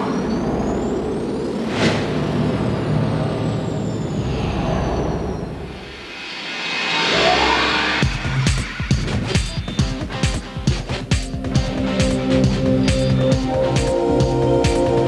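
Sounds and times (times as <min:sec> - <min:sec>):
rising whoosh: 0:00.0 - 0:08.5
noisy rumbling wash: 0:00.0 - 0:08.9
high whistles sliding down: 0:03.7 - 0:08.1.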